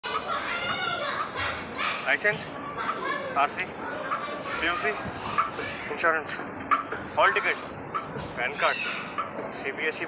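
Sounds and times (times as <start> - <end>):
high-pitched voices calling out: 0.0 - 6.4, 8.4 - 9.3.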